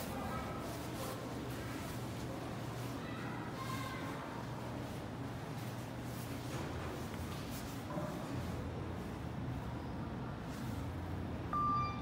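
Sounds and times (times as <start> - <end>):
low background hum: 0.0 - 12.0
elevator electronic ding: 11.5 - 12.0.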